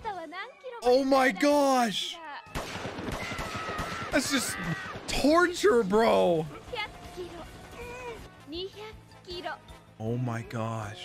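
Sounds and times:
rapid small explosion bangs: 2.6 - 5.3.

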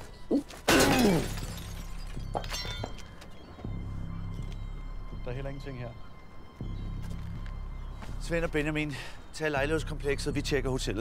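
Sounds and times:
car window glass smashing: 0.6 - 3.0.

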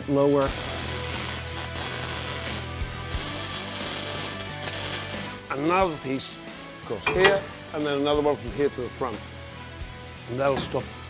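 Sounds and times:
background music: 0.0 - 11.0
welder hissing: 0.4 - 5.4.

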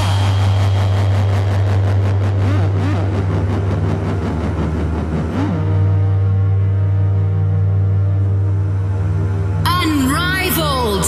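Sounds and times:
deep bass drone: 0.0 - 11.0
held synth chord: 0.0 - 11.0
swooping synth glides: 0.0 - 11.0.

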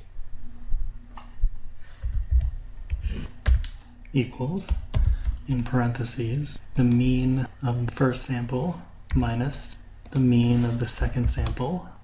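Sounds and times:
computer keyboard typing: 2.0 - 3.8, 4.6 - 5.4.

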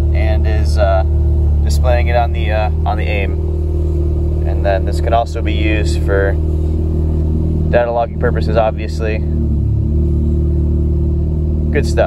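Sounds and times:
rotary engine idling: 0.0 - 12.0.

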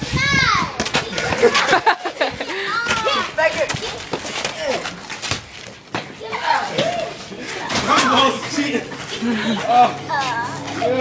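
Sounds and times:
children shouting: 6.2 - 8.2.

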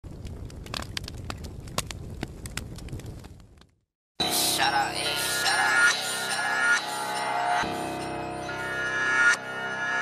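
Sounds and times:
crackling clicks: 0.1 - 3.8.

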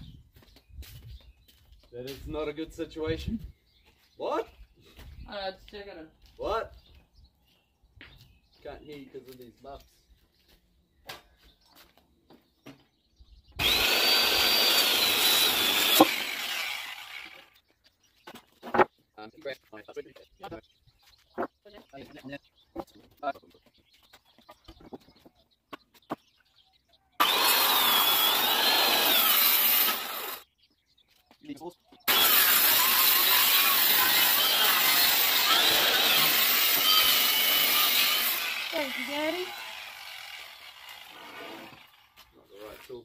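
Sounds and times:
circular saw cutting timber: 13.6 - 17.6, 27.2 - 30.4, 32.1 - 43.0.

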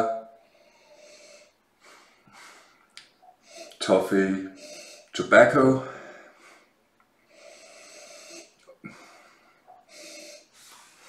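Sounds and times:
man sniffing and breathing: 0.5 - 5.2, 5.8 - 11.0.

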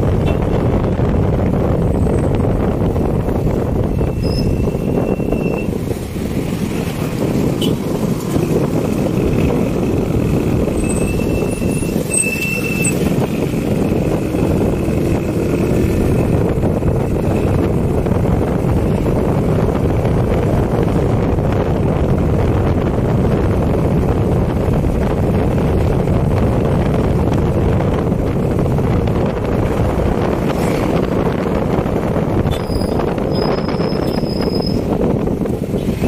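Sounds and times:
vehicle road noise: 0.0 - 36.0
wind on microphone: 0.0 - 36.0.

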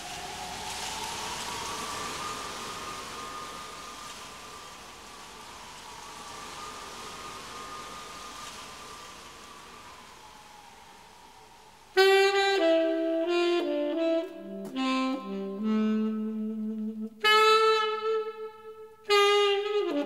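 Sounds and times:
rain-like hiss: 0.0 - 20.0.

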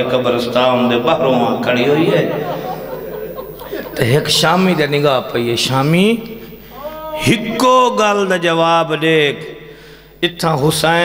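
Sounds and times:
man reciting over loudspeaker: 0.0 - 2.6, 3.8 - 11.0.

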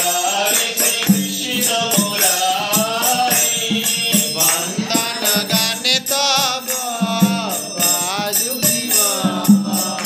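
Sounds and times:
hand cymbals jingling: 0.0 - 10.0
man singing devotional song: 0.0 - 10.0
two-headed drum strokes: 0.0 - 10.0.

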